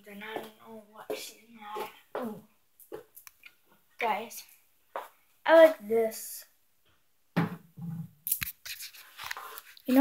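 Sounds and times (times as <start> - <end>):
phone rubbing on microphone: 8.4 - 10.0.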